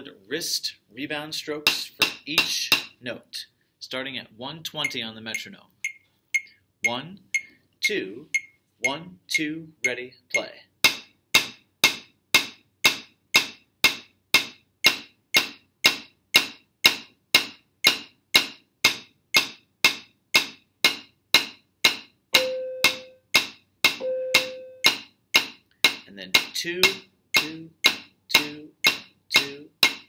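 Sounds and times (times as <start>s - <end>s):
drumsticks striking practice pad: 1.7s - 2.9s, 10.8s - 30.0s
short held tone: 22.4s - 23.2s, 24.0s - 24.9s.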